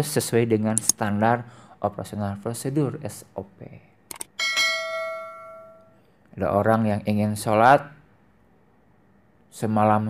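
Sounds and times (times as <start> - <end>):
bright bell ding: 4.4 - 6.0.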